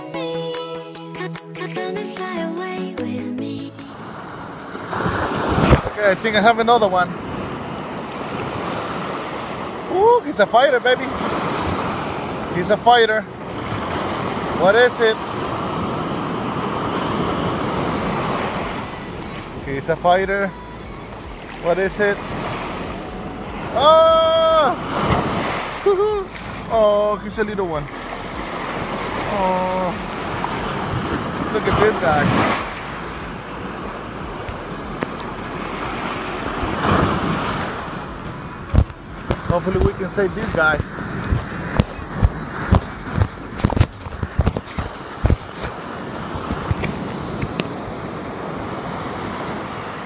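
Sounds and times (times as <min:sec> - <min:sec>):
surf washing: 0:02.1 - 0:50.0
wind noise on microphone: 0:04.8 - 0:06.2, 0:28.0 - 0:50.0.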